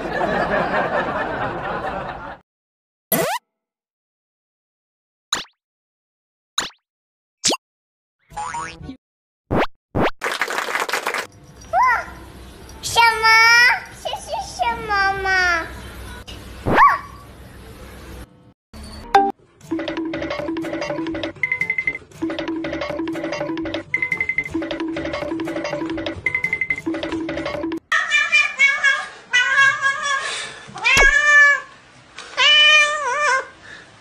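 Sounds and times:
cat meowing loudly: 28.1 - 30.1, 30.8 - 31.7, 32.4 - 33.5.

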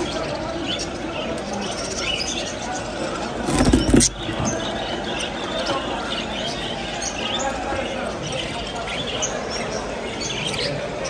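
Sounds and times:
small caged birds chirping: 0.0 - 11.0.

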